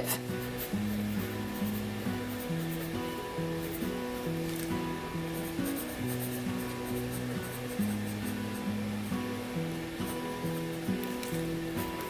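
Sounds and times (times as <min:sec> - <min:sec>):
soft instrumental music: 0:00.0 - 0:12.0.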